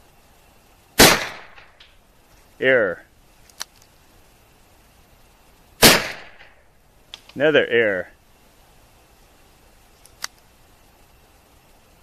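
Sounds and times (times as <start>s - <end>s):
revolver gunshot: 1.0s - 1.8s, 5.8s - 6.6s.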